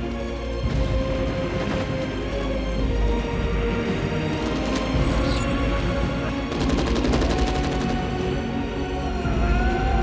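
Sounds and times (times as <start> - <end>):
rapid automatic gunfire: 6.5 - 8.3.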